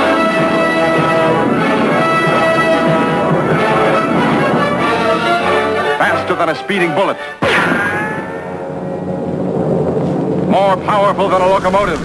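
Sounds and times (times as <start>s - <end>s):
low hum: 9.5s - 12.0s.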